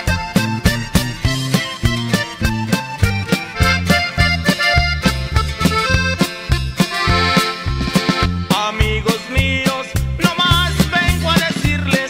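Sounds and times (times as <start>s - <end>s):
lead melody: 0.0s - 9.0s
two-note bass line: 0.0s - 9.0s
drums: 0.0s - 12.0s.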